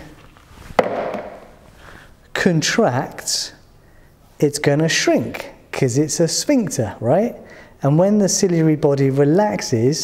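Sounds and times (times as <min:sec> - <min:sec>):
object knocking on surface: 0:00.8 - 0:01.4.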